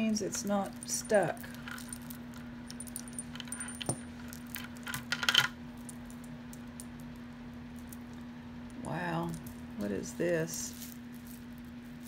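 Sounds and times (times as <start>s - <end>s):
faint steady hum: 0.0s - 12.0s
jewelry beads and chains clinking: 0.4s - 6.3s, 10.5s - 12.0s.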